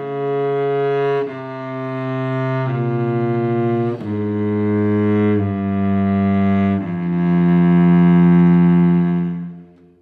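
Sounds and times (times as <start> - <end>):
cello bowed note: 0.0 - 10.0.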